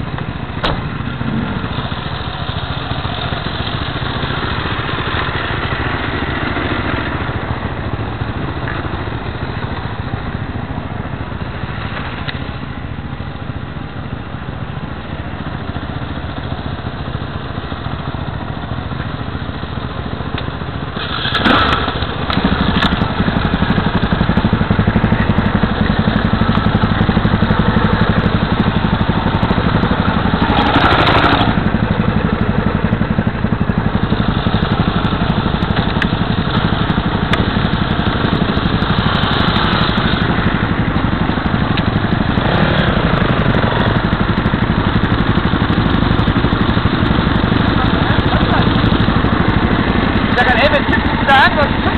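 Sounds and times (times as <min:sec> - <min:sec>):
motorcycle engine running at low revs: 0:00.0 - 0:51.9.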